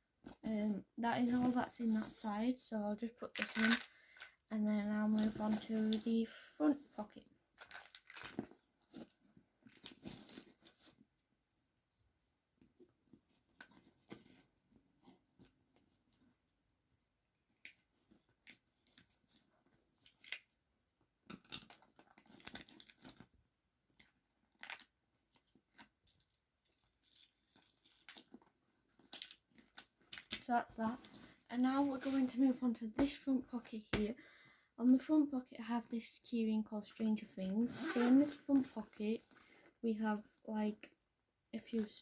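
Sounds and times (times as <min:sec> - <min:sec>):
small items clicking: 0:03.4 - 0:04.4, 0:26.0 - 0:28.4.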